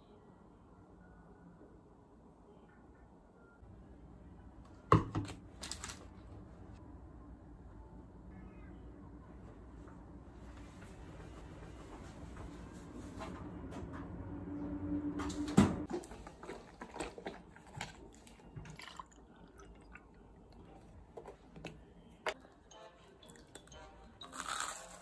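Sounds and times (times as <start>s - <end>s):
low hum: 6.3s - 15.9s
juice pouring into a glass: 18.6s - 20.4s.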